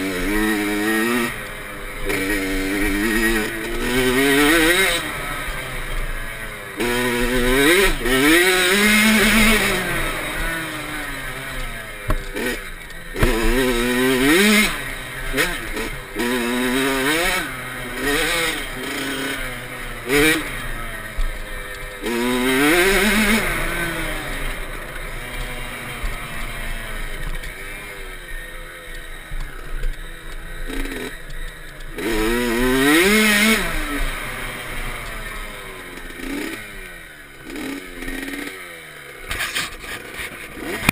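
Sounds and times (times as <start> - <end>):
dirt bike engine revving: 0.0 - 40.9.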